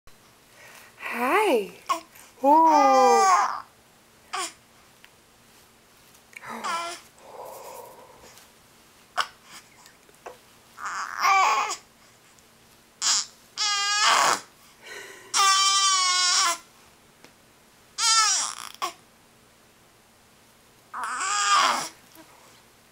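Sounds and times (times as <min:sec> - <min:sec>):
baby crying: 0:02.6 - 0:03.7, 0:06.5 - 0:07.0, 0:10.8 - 0:11.8, 0:13.0 - 0:14.5, 0:15.3 - 0:16.6, 0:18.0 - 0:19.0, 0:21.0 - 0:22.0.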